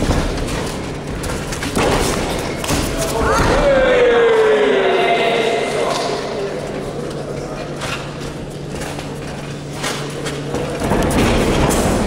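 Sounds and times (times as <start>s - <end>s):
crowd shouting and yelling: 2.9s - 7.2s.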